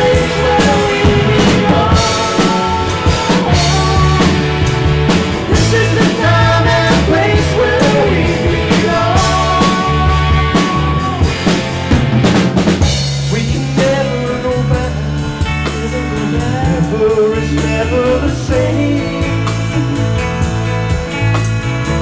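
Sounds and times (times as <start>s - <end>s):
quick drum hits: 0.0s - 13.3s
live rock band playing: 0.0s - 22.0s.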